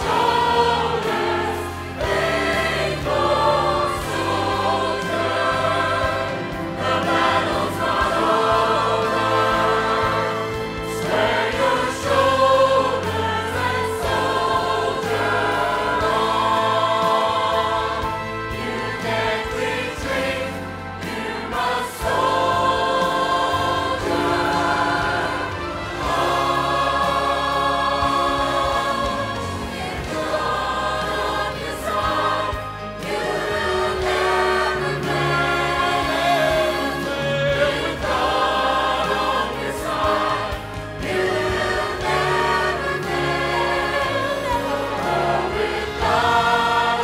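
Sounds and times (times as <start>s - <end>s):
choir singing held chords: 0.0s - 47.0s.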